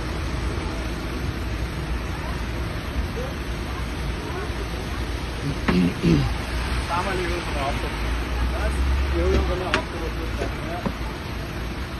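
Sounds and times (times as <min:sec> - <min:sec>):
traffic on wet street: 0:00.0 - 0:11.9.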